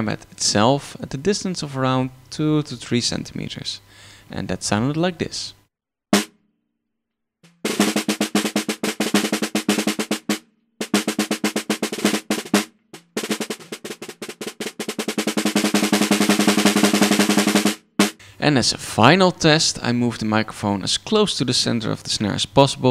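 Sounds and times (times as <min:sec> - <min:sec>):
snare drum hits: 0:06.2 - 0:06.4, 0:07.5 - 0:18.2.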